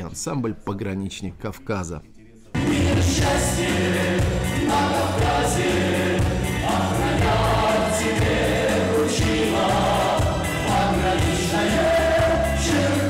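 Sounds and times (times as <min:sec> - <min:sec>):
group of people singing: 0:02.6 - 0:13.0
instrumental accompaniment with beat: 0:02.6 - 0:13.0.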